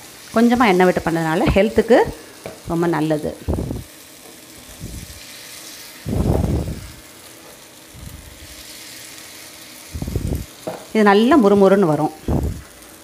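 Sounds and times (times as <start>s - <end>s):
batter sizzling in oil: 0.0s - 13.0s.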